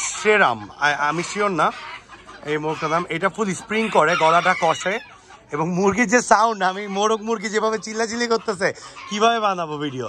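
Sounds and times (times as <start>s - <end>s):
chickens clucking: 0.0s - 10.0s
man speaking: 2.4s - 10.0s.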